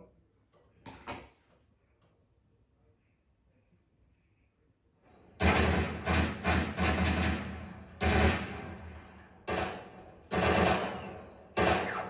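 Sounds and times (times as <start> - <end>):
rifle shots through tv speakers: 5.4 - 12.0.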